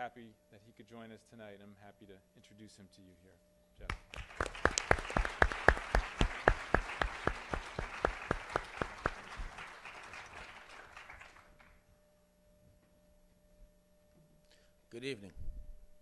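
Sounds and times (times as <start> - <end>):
loud close hand claps: 3.8 - 11.8
audience applause: 4.0 - 11.8.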